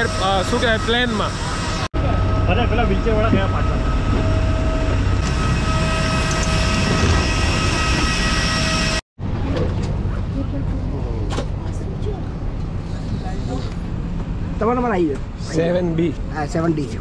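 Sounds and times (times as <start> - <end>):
jet turbine engine whining: 0.0 - 9.0.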